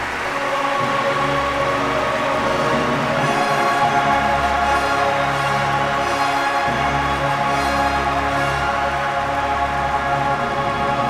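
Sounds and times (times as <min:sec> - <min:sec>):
orchestra holding sustained chords: 0:00.0 - 0:11.0.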